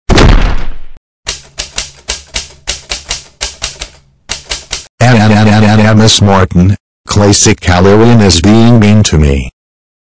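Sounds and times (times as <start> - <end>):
rapid keyboard typing: 1.3 - 4.9.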